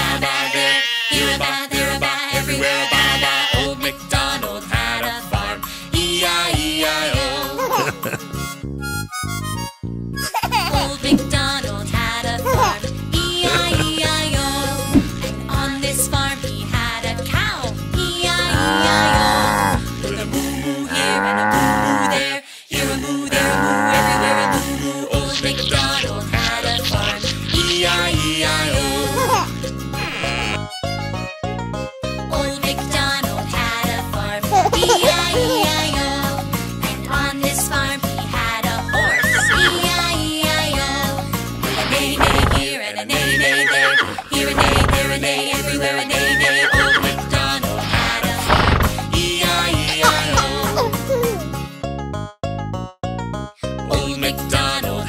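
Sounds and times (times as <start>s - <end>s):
children's song backing music: 0.0s - 8.2s, 10.6s - 29.7s, 31.8s - 51.7s, 53.6s - 55.0s
cartoon cow mooing: 0.4s - 1.2s, 2.7s - 3.7s, 18.5s - 19.8s, 20.9s - 22.3s, 23.3s - 24.7s, 38.9s - 39.8s, 43.2s - 45.0s
horse whinny: 38.9s - 39.7s, 43.2s - 44.2s, 46.2s - 47.0s.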